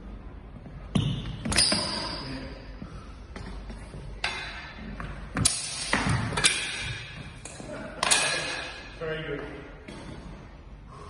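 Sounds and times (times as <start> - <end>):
swords clashing: 5.4 - 7.1.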